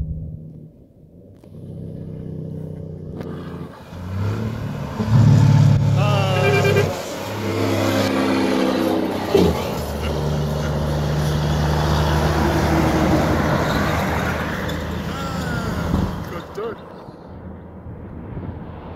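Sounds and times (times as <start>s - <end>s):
truck driving past: 1.2s - 18.9s.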